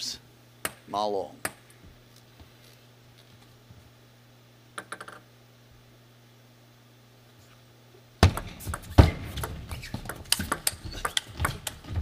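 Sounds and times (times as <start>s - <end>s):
table tennis ball clicking: 4.8s - 5.2s, 9.4s - 11.9s.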